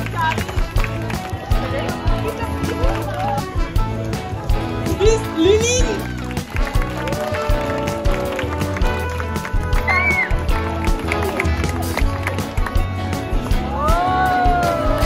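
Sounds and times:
music with steady beat: 0.0s - 15.0s.

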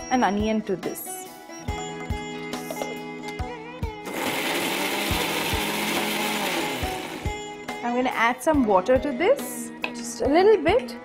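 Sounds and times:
mixer grinder running: 4.0s - 7.4s.

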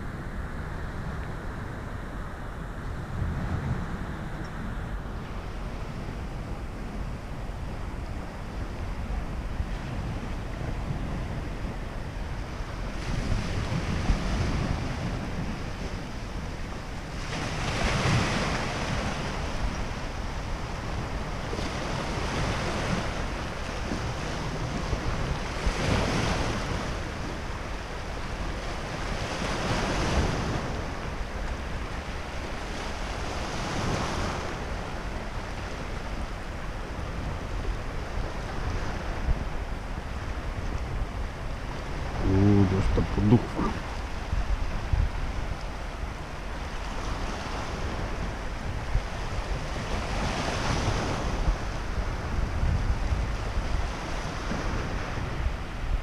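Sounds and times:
wind rumble on microphone: 0.0s - 56.0s
sea waves breaking: 3.0s - 56.0s.

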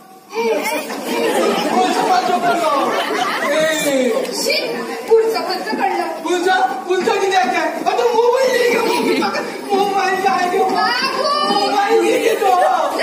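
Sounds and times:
actors talking over sound system: 0.0s - 13.0s.

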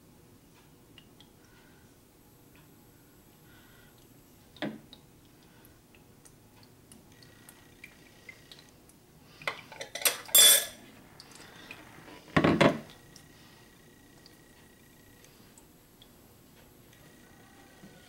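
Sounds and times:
metal and glass clinks: 10.0s - 10.8s.

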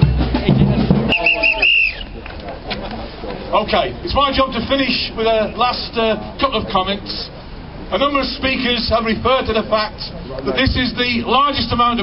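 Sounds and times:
music with drum beat: 0.0s - 2.2s
whistle toots: 1.1s - 2.2s.

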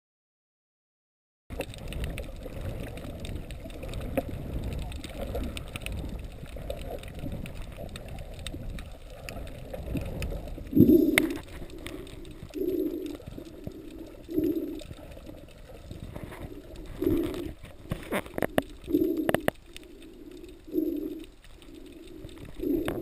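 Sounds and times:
small underwater clicks and gurgles: 1.5s - 23.0s
underwater rush of water: 1.5s - 23.0s.

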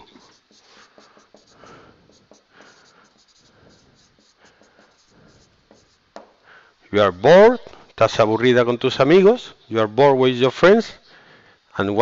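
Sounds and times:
marker pen scratching on whiteboard: 0.0s - 6.3s.

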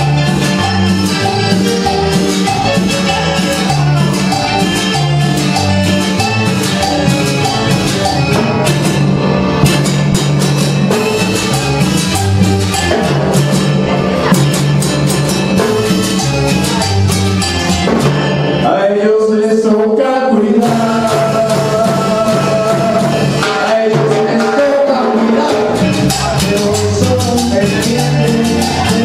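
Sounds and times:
congas and timbales: 0.0s - 29.0s
electric bass: 0.0s - 29.0s
keyboard: 0.0s - 29.0s.

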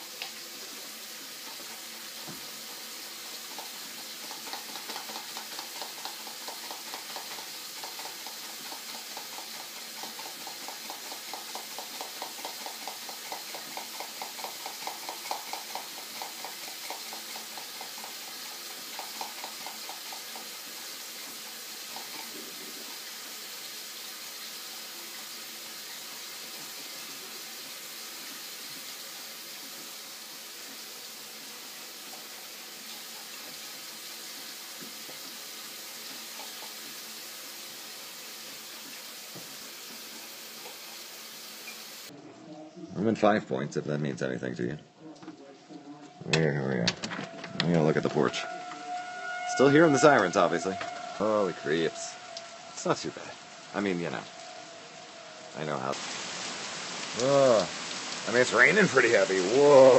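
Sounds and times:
steady hiss: 0.0s - 43.4s, 49.5s - 59.9s.

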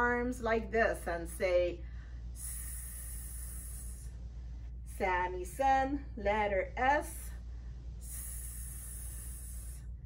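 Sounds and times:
woman making hissing sss: 2.4s - 4.2s, 8.0s - 9.9s.

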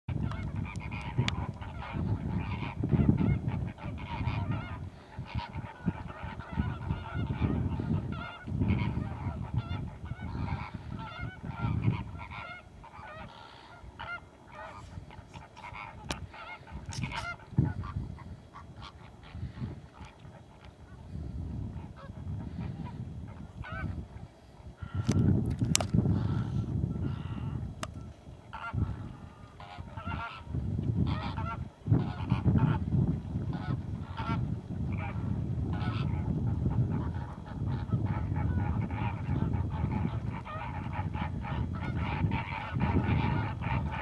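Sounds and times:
flamingos honking and gabbling: 0.1s - 44.0s.

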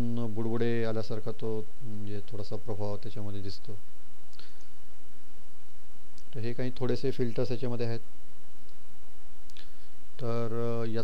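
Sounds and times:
person speaking: 0.0s - 4.5s, 6.1s - 8.2s, 9.5s - 11.0s
steady low hum: 0.0s - 11.0s.

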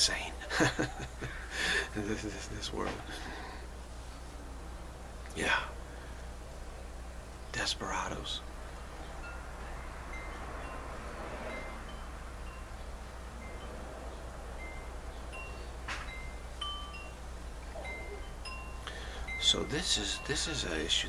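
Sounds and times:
steady low hum: 0.0s - 21.0s
wind chimes ringing: 9.1s - 21.0s.

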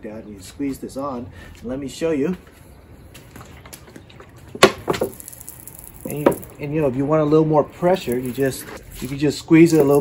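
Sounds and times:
plastic bottle crinkling: 3.2s - 6.6s.

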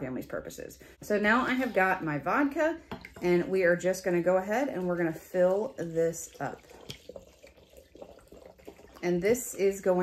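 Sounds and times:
liquid pouring into glass jar: 4.9s - 9.7s.

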